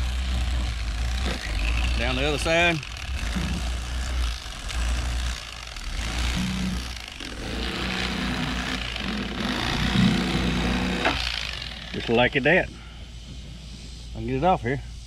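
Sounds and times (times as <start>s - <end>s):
electric knife sawing through fish: 0.0s - 12.6s.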